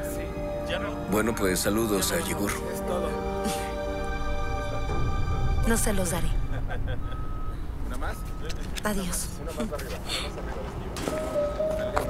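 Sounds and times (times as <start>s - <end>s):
vehicle engine rumbling: 4.0s - 11.0s.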